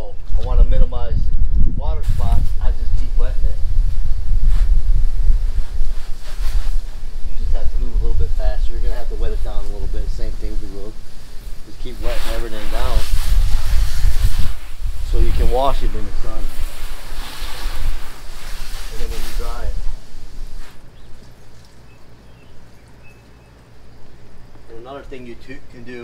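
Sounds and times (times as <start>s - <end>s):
wind rumbling on microphone: 0.0s - 26.0s
garden hose spraying water: 2.0s - 26.0s.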